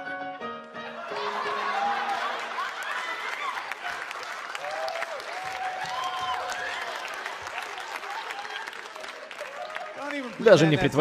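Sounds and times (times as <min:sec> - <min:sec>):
audience applauding: 0:00.9 - 0:11.0
audience laughter: 0:01.0 - 0:04.5.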